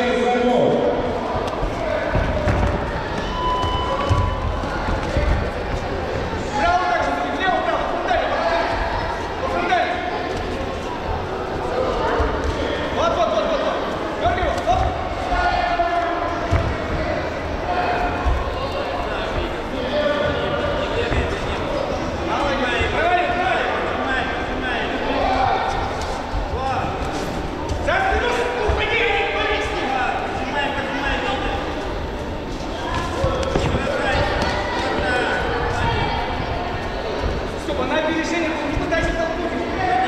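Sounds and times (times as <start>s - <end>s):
voices calling out in a hall: 0.0s - 40.0s.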